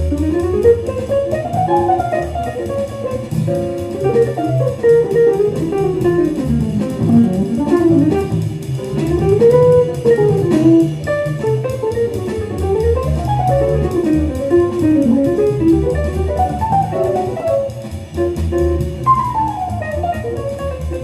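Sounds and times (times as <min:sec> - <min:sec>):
bass line: 0:00.0 - 0:21.0
electric guitar jazz solo: 0:00.0 - 0:21.0.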